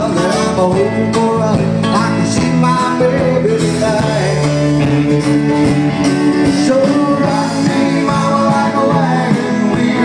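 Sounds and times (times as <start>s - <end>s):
acoustic guitar: 0.0s - 10.0s
drums: 0.0s - 10.0s
electric bass: 0.0s - 10.0s
keyboard: 0.0s - 10.0s
person singing: 0.0s - 10.0s.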